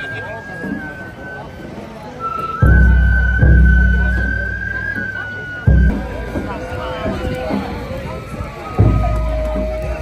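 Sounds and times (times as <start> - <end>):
high flute note: 0.0 - 10.0
street crowd chatter: 0.0 - 10.0.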